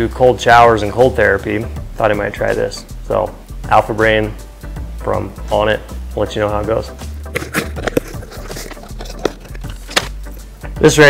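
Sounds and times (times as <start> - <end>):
cardboard box rummaging: 7.3 - 10.1
packaging crinkling: 7.3 - 10.2.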